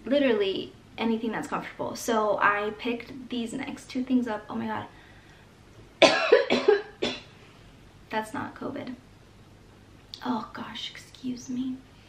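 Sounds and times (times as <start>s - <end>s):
woman coughing: 6.0s - 7.3s.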